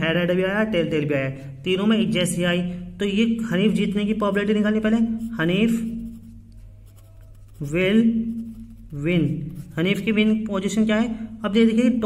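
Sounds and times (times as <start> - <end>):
person speaking: 0.0 - 12.0
pen scratching on paper: 3.8 - 10.1.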